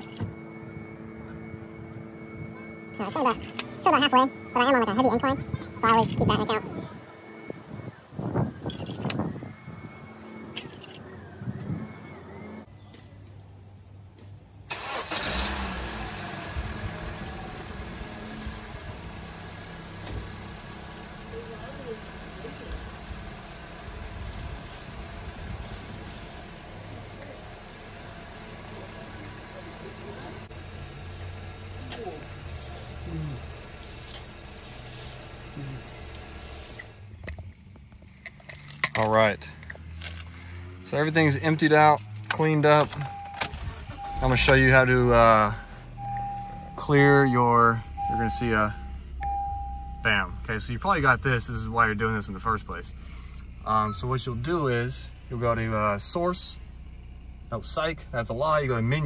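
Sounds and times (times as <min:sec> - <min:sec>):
car engine starting and idling: 0:00.0 - 0:12.7, 0:13.9 - 0:59.0.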